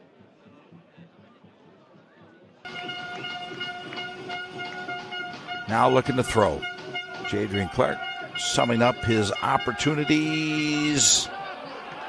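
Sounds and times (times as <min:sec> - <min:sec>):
stadium crowd noise: 0:00.0 - 0:12.0
steady horn tone: 0:02.7 - 0:11.3.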